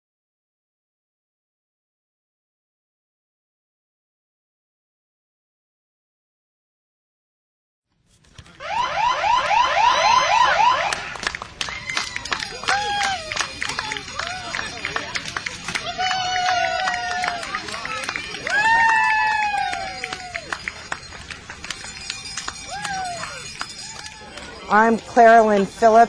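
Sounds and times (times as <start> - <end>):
electronic siren yelping: 8.6 - 11.1
people whooping and calling out: 8.6 - 21.0, 21.8 - 24.8.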